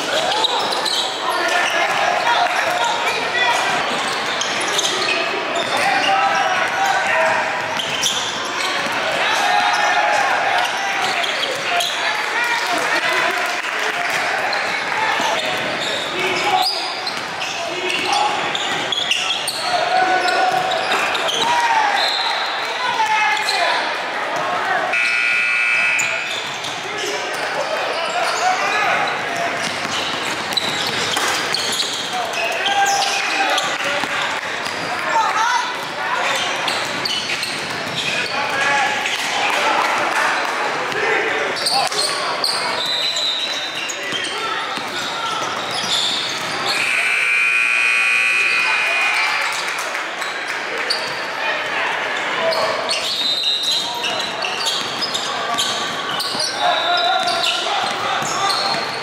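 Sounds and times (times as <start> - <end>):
voices of players and spectators: 0.0 - 59.0.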